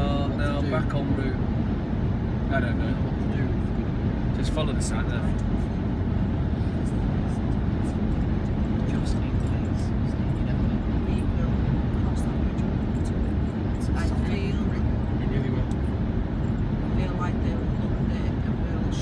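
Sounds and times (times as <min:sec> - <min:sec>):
car road and engine noise: 0:00.0 - 0:19.0.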